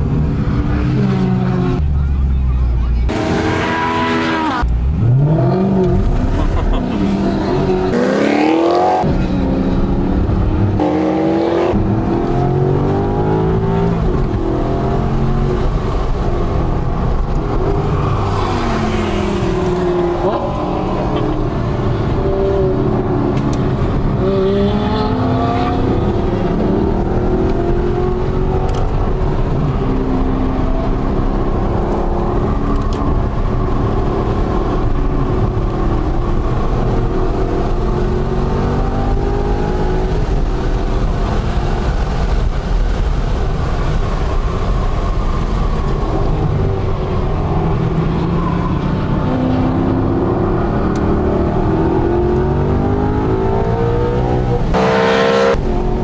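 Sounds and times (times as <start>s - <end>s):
car engine revving: 3.0s - 56.0s.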